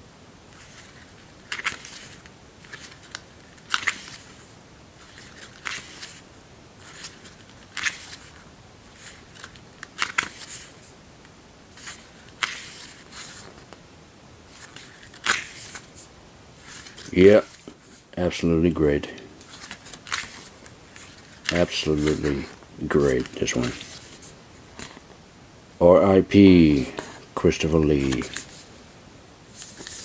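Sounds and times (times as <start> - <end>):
paper pages turning: 0.5 - 6.2, 6.8 - 10.9, 11.7 - 13.8, 14.5 - 18.0, 18.8 - 25.1, 26.7 - 28.7, 29.5 - 30.0.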